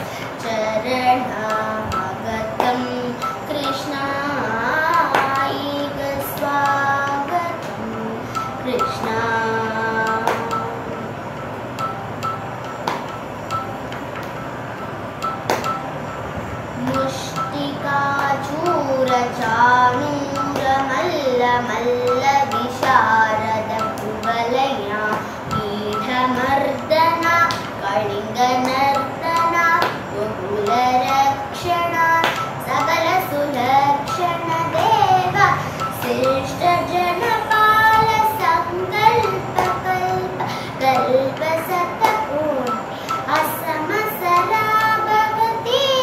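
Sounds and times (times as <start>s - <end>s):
girl singing devotional song: 0.0s - 14.4s, 15.2s - 46.0s
high pinging notes: 0.0s - 46.0s.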